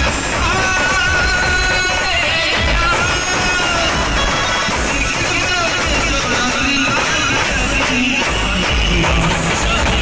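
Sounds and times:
loud music with heavy bass: 0.0s - 10.0s.

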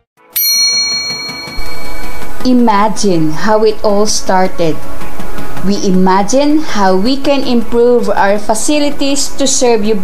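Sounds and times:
background music: 0.2s - 10.0s
bell-like chime: 0.4s - 2.4s.

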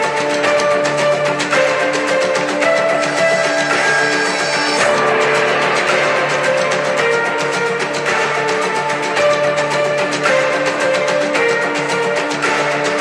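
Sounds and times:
guitar soundtrack music: 0.0s - 13.0s.

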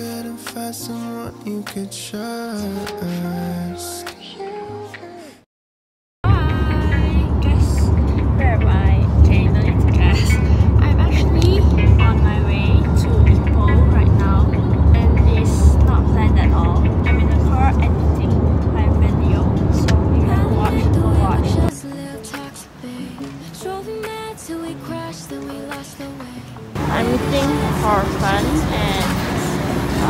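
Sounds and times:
car road rumble: 6.2s - 21.7s, 26.8s - 30.0s
girl talking: 6.3s - 21.8s, 26.9s - 29.5s.

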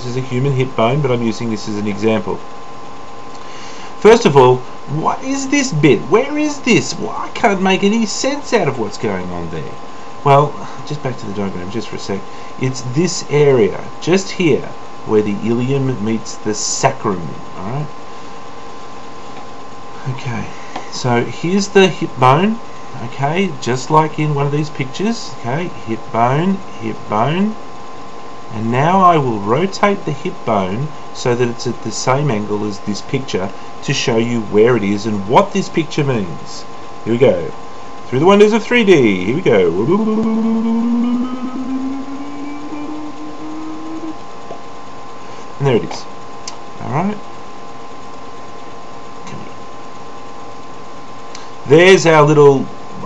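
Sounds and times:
background hiss: 0.0s - 53.0s
faint hum: 0.0s - 53.0s
man humming a rising note: 39.7s - 44.2s.

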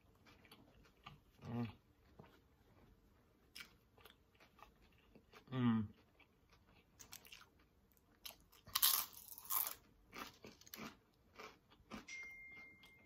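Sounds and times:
chewing crispy chips: 0.0s - 12.1s.

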